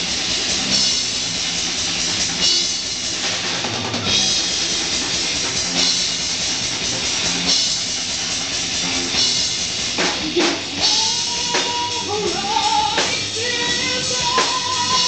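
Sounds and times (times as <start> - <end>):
drum kit hits: 0.0 - 15.0
live rock band playing: 0.0 - 15.0.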